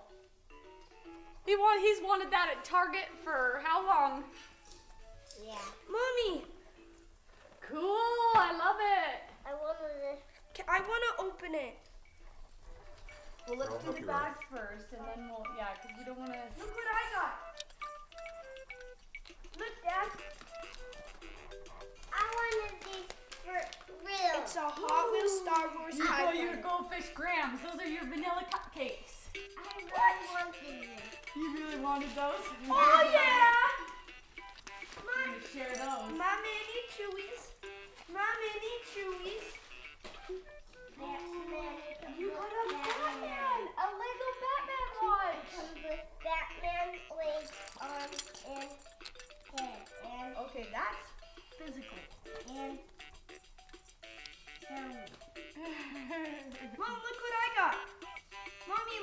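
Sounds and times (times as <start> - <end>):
voices in the room: 0.0 - 59.0
tinkly electronic toy tune: 12.0 - 22.1, 27.5 - 38.0, 45.7 - 56.8.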